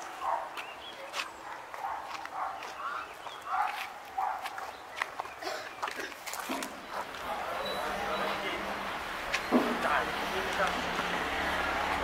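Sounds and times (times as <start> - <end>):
distant dog barking: 0.1 - 4.8.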